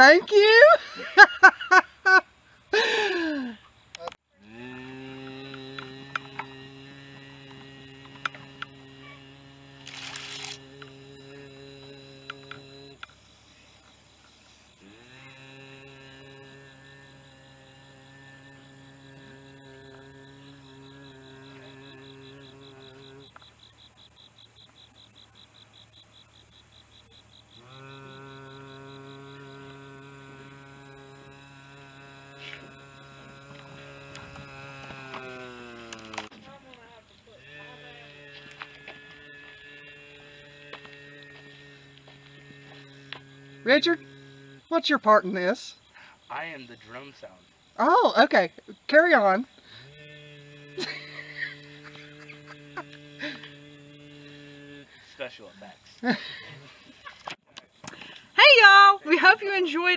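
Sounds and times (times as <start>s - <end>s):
man humming low note: 4.4s - 13.1s, 14.8s - 23.4s, 27.6s - 36.4s, 37.6s - 44.7s, 50.1s - 55.0s.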